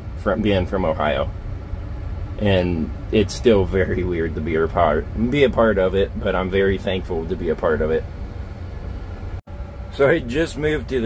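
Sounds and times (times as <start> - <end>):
tractor engine rumble: 0.0 - 11.0.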